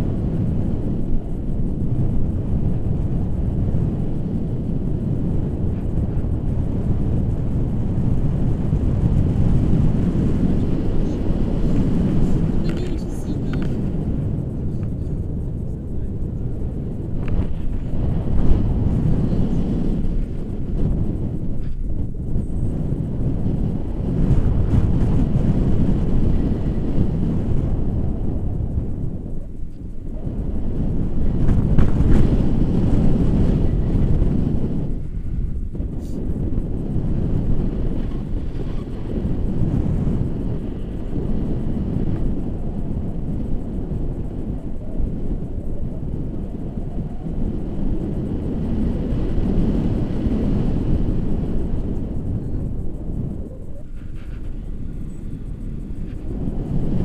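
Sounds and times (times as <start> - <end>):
wind rumbling on camera microphone: 0.0 - 57.0.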